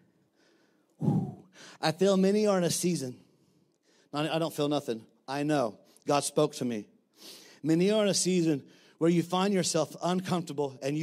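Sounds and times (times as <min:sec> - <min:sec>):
man sighing into microphone: 0:01.0 - 0:01.8
man speaking: 0:01.0 - 0:03.3, 0:04.0 - 0:07.0, 0:07.6 - 0:11.0.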